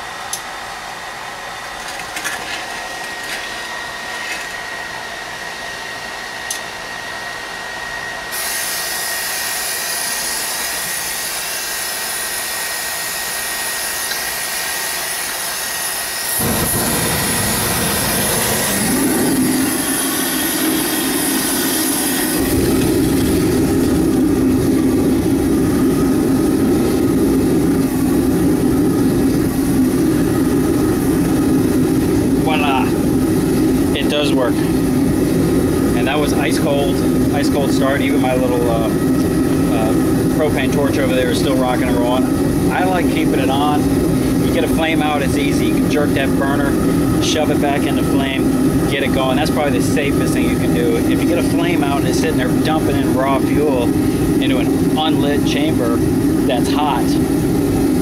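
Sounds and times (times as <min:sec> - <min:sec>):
electric blower fan running: 0:00.0 - 0:58.0
oil burner roaring: 0:00.0 - 0:58.0.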